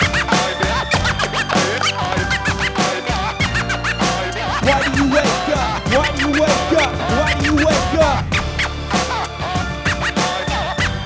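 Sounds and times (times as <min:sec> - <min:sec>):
steady hip hop beat: 0:00.0 - 0:11.0
turntable scratching: 0:00.0 - 0:11.0.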